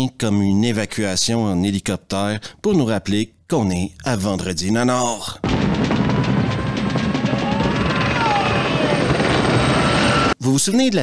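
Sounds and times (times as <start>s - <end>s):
helicopter rotor beating: 5.4s - 10.4s.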